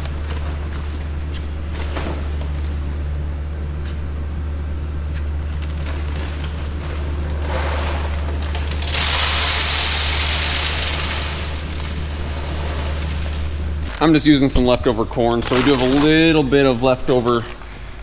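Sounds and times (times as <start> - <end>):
steady low hum: 0.0 - 18.0
seed corn pouring into hopper: 7.4 - 13.6.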